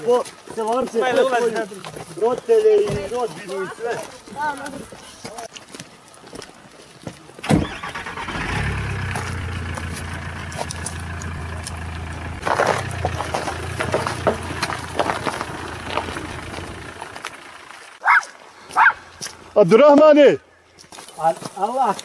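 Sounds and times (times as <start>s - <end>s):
minivan engine idling: 7.6s - 18.0s.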